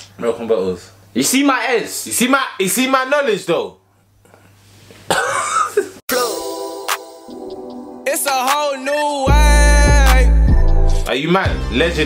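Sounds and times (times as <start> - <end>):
man coughing: 5.1 - 6.4.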